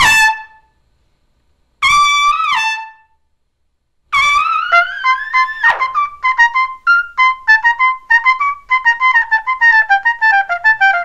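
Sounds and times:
trumpet playing high notes: 4.2 - 11.0.

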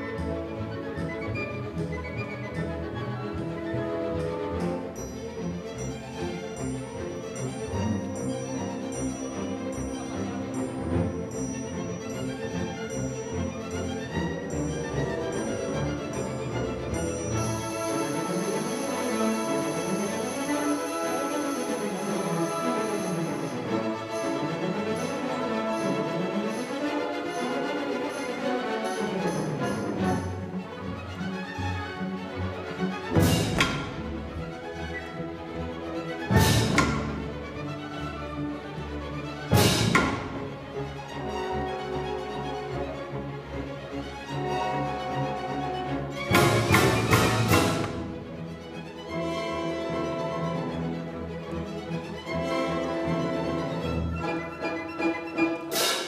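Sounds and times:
symphony orchestra playing: 0.0 - 56.0.

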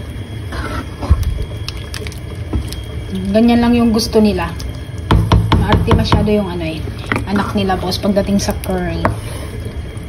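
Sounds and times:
spatula knocking against pot: 5.1 - 6.3.

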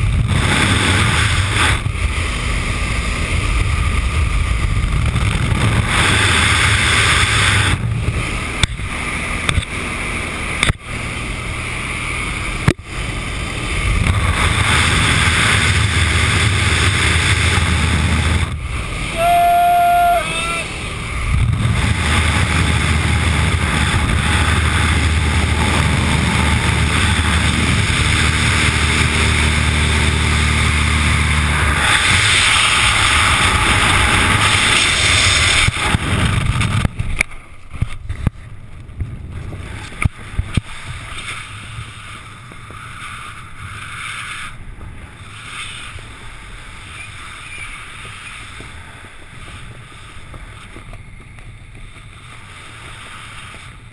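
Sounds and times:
light aircraft engine: 0.0 - 53.9
wind buffeting on microphone: 0.0 - 53.9.

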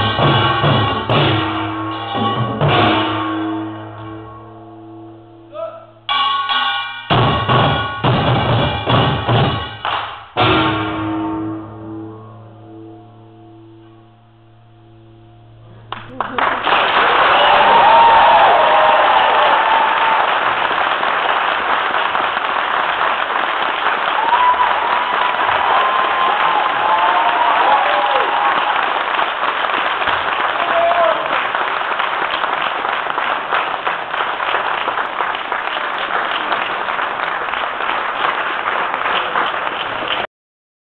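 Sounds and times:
audience applauding: 15.9 - 40.3.

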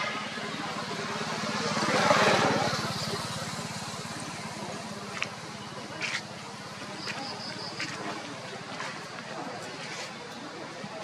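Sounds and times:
vehicle engine passing: 0.0 - 8.5.

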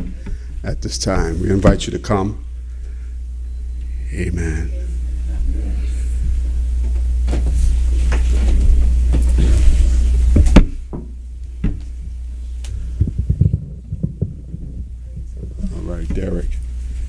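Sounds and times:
loud low hum: 0.0 - 17.0.

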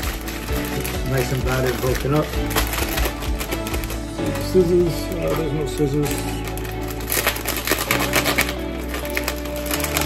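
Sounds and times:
background music with bass: 0.0 - 10.0
plastic bag crinkling: 0.0 - 10.0.

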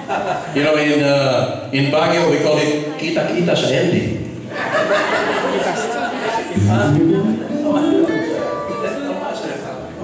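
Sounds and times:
voices talking and laughing: 4.5 - 8.3.

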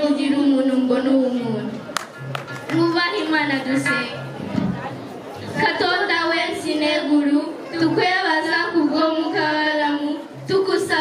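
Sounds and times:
music: 0.0 - 11.0
voices in a large hall: 0.0 - 11.0.

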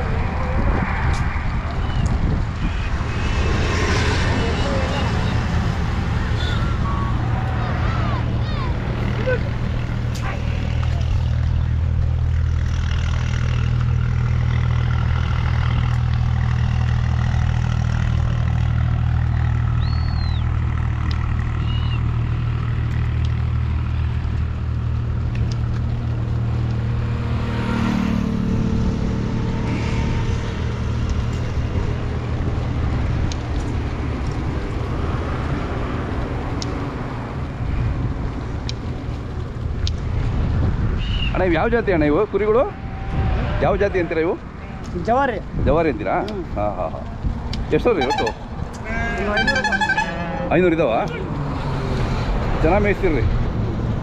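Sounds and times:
vehicle engine droning: 0.0 - 54.0.

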